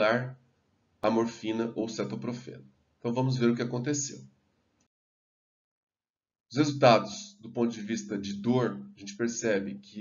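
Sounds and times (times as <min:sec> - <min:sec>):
man speaking: 0:00.0 - 0:00.4, 0:01.0 - 0:04.2, 0:06.5 - 0:10.0.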